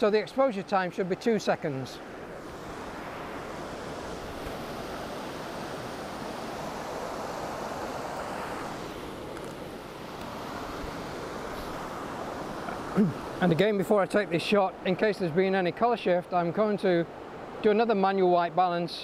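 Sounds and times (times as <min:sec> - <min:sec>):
river rushing over rocks: 0:00.0 - 0:18.4.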